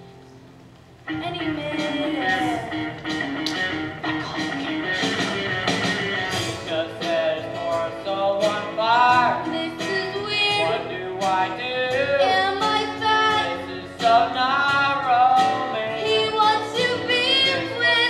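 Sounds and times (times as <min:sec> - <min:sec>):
instrumental accompaniment: 0:00.0 - 0:18.0
person singing a show tune: 0:01.1 - 0:02.8, 0:05.9 - 0:18.0.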